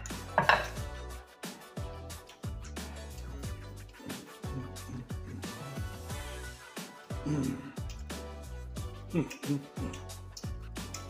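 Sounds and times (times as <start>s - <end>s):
fork clattering against plate: 0.0s - 0.8s
music with deep bass beat: 0.0s - 11.0s.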